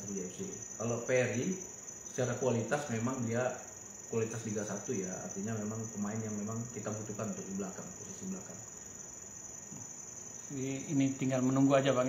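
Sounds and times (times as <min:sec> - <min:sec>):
crickets trilling: 0:00.0 - 0:12.0.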